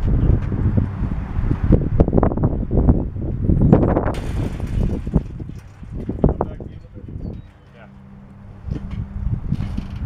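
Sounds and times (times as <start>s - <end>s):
wind noise on microphone: 0.0s - 7.6s, 8.3s - 10.0s
hot tub knocking and scraping: 4.1s - 7.8s.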